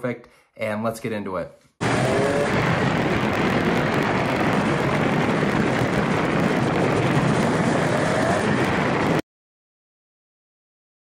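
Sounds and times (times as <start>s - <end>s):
snowmobile engine running: 1.8s - 9.2s
wind noise on microphone: 1.8s - 9.2s.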